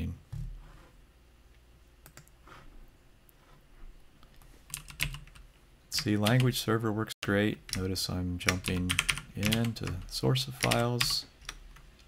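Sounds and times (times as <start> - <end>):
computer keys clicking: 2.0 - 2.3, 4.7 - 5.4, 7.7 - 12.0.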